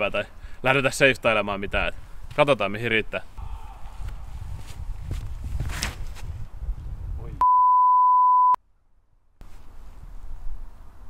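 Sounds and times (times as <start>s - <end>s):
wind rumble on microphone: 3.4s - 7.4s
footstep scuffs: 4.0s - 6.4s
censor bleep: 7.4s - 8.6s.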